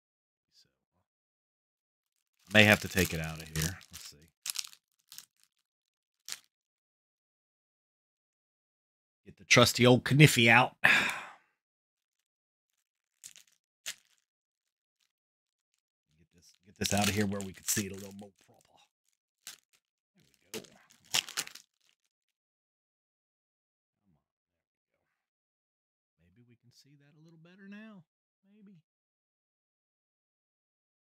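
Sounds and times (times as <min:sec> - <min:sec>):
cardboard card crinkling: 0:02.2 - 0:06.5, 0:12.7 - 0:14.3, 0:16.4 - 0:18.8, 0:19.4 - 0:22.1.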